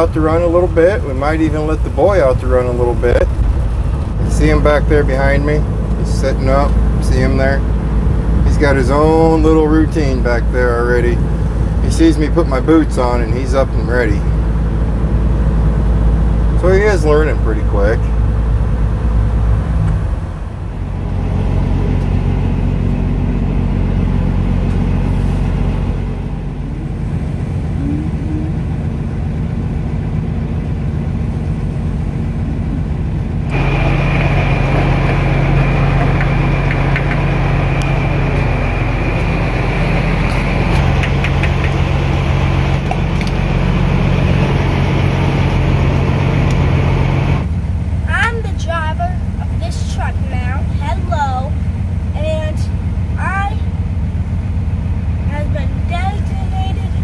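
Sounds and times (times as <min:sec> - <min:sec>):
diesel truck engine running: 0:00.0 - 0:57.0
steady high whine: 0:00.0 - 0:57.0.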